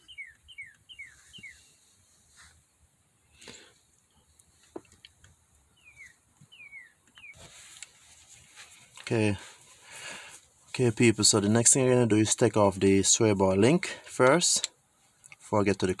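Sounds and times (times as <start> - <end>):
faint bird chirps: 0.0 - 2.0, 5.6 - 7.5.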